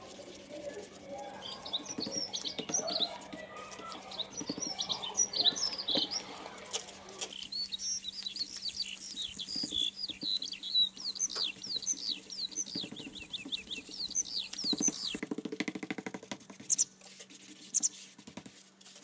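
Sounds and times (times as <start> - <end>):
small birds chirping: 0.0 - 15.2, 16.6 - 18.0
brush scrubbing paint on canvas: 0.0 - 19.0.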